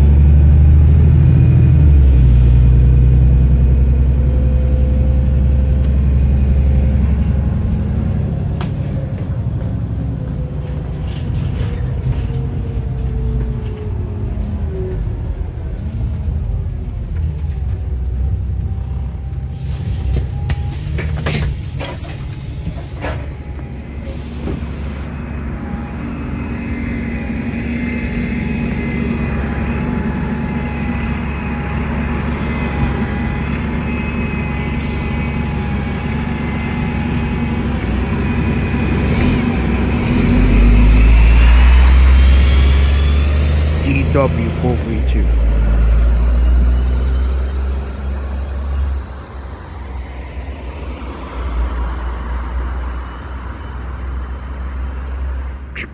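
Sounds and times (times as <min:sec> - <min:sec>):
engine whine rising in pitch: 0:00.0 - 0:19.5, 0:22.0 - 0:55.4
bus engine rumble: 0:00.0 - 0:55.9.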